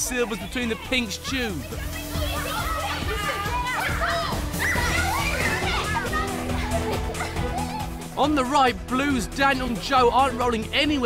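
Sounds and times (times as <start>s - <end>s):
children shouting and laughing: 0.0s - 8.5s.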